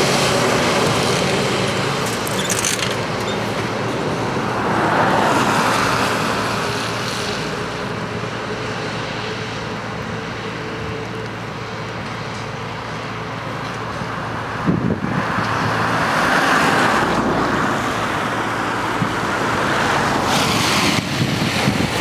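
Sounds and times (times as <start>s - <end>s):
steady traffic rumble: 0.0s - 22.0s
vehicle passing on wet road: 0.0s - 22.0s.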